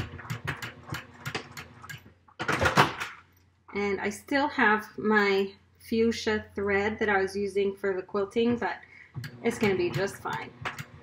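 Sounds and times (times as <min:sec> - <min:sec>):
faint motor hum: 0:08.4 - 0:11.0.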